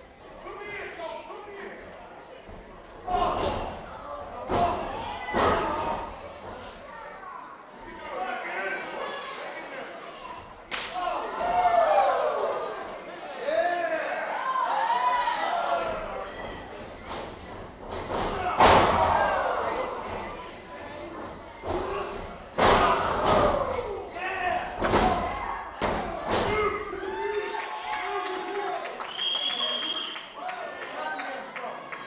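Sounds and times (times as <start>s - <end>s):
crowd chatter: 0.0s - 32.0s.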